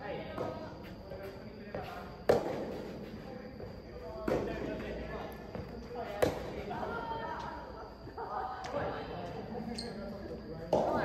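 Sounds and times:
rackets hitting rubber ball echoing: 2.2 - 2.8, 10.7 - 11.0.

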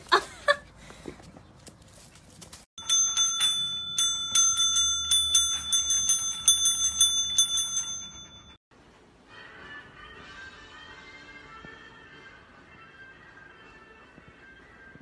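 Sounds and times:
desk service bell dinging: 2.8 - 8.6.

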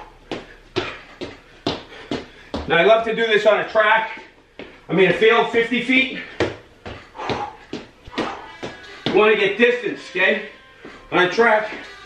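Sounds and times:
footsteps on rubber mat: 0.0 - 12.0.

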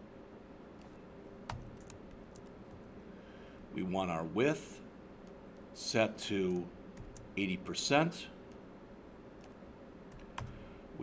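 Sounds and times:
typing on computer keyboard: 1.5 - 2.8, 6.5 - 7.3, 9.4 - 10.6.

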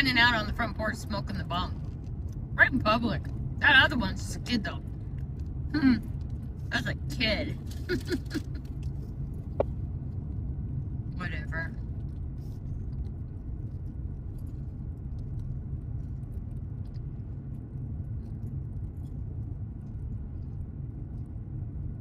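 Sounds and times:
car driving heard from inside: 0.0 - 22.0.

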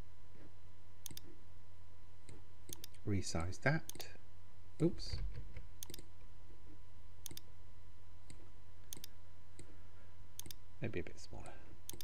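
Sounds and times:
steady low hum: 0.0 - 12.0
computer mouse clicks: 1.0 - 1.3, 2.3 - 3.0, 5.8 - 6.1, 7.2 - 7.5, 8.3 - 9.7, 10.4 - 10.6.

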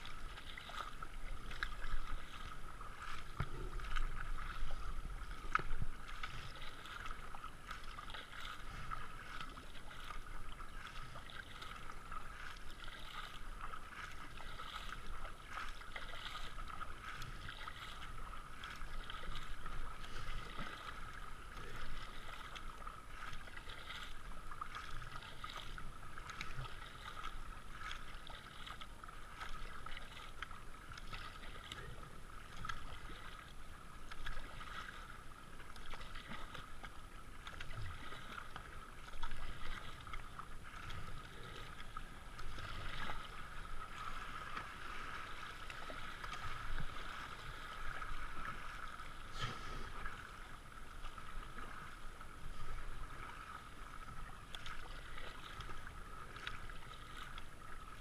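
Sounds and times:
river water rushing: 0.0 - 30.3, 37.4 - 58.0
kayak paddle splashing: 0.0 - 58.0.

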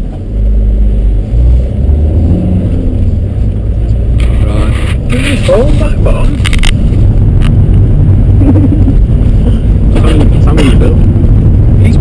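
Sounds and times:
car cabin rumble: 0.0 - 12.0.

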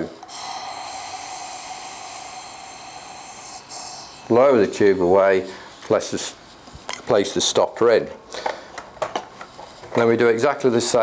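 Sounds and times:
soft breath hiss: 0.0 - 8.8.

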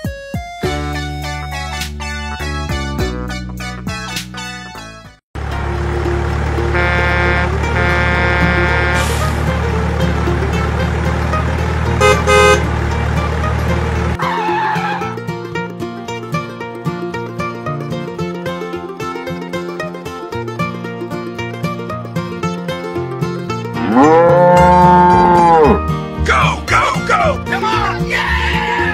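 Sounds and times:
music with a steady beat: 0.0 - 5.1
toy horn honks: 6.7 - 9.3, 12.0 - 12.7.

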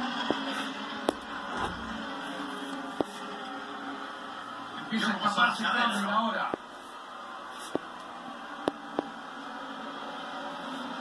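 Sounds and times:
stock car race broadcast: 0.0 - 11.0.

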